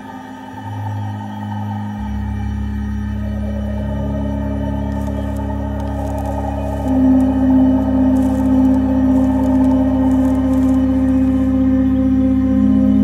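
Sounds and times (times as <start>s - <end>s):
ambient organ-like held chords: 0.0s - 13.0s.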